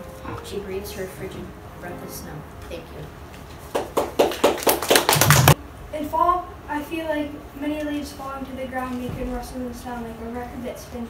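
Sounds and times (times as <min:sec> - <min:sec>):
audience clapping: 0:03.6 - 0:05.6.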